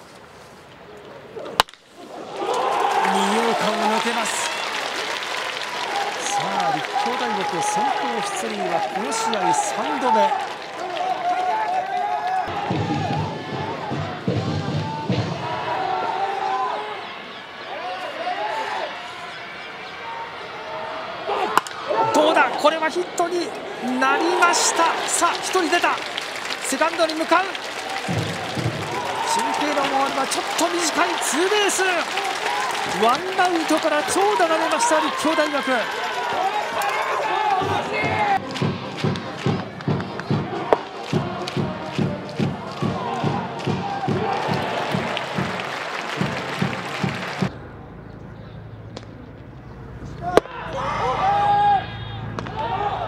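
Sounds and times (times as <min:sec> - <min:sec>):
crowd voices: 0:00.7 - 0:53.0
bat cracking ball: 0:01.6 - 0:01.9, 0:21.5 - 0:21.8
commentator speaking: 0:03.0 - 0:04.5, 0:06.2 - 0:10.3, 0:22.0 - 0:27.6, 0:29.2 - 0:32.1, 0:32.8 - 0:35.9
heavy drum thumps: 0:12.5 - 0:15.6, 0:28.1 - 0:29.2.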